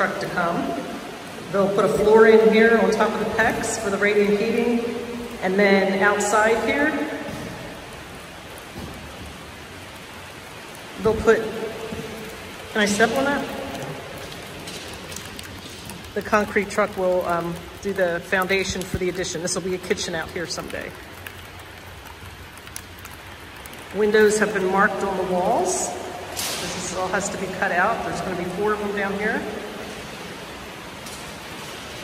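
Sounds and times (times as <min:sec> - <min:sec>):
rain on a metal bin: 0:00.0 - 0:32.0.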